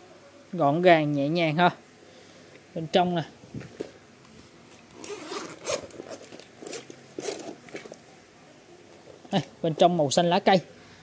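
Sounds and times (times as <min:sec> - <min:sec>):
fabric rustling: 0:03.5 - 0:08.0
long zipper being pulled open: 0:04.9 - 0:08.0.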